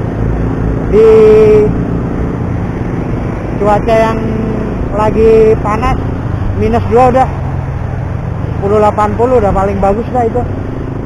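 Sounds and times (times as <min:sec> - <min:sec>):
motorcycle engine rumble: 0:00.0 - 0:11.0
road noise: 0:00.0 - 0:11.0
man's drawn-out voice: 0:00.9 - 0:01.8, 0:03.6 - 0:07.4.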